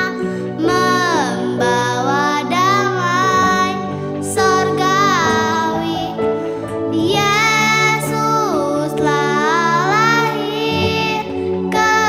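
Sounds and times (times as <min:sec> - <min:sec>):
girl singing: 0:00.0 - 0:06.2, 0:06.9 - 0:12.0
instrumental backing track: 0:00.0 - 0:12.0.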